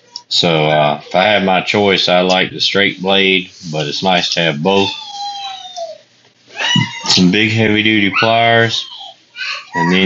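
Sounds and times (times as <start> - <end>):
high-pitched vocal cry: 4.7 - 7.3, 8.0 - 10.0.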